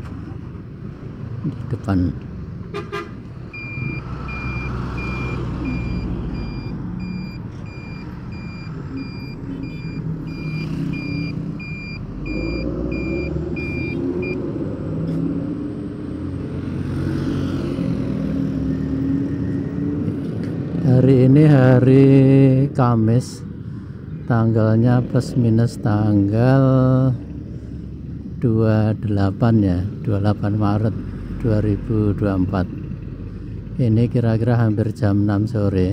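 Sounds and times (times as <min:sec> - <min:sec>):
engine and road traffic noise: 0:00.0 - 0:35.9
truck reversing alarm beeping: 0:03.5 - 0:14.5, 0:18.5 - 0:19.9.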